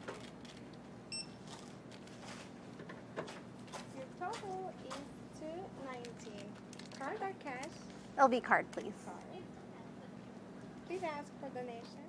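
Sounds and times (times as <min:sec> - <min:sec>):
checkout register beep: 0:01.1 - 0:01.4.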